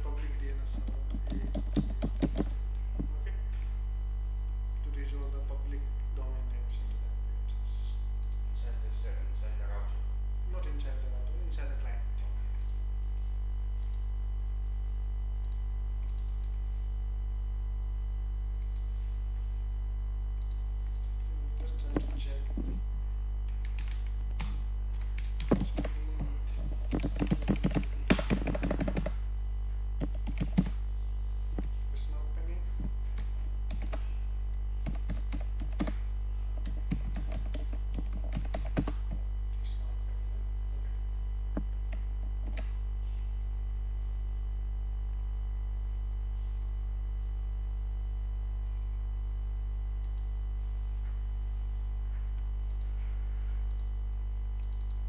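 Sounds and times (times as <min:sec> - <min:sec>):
faint high-pitched whine: 0:00.0 - 0:55.0
low electrical hum: 0:00.0 - 0:55.0.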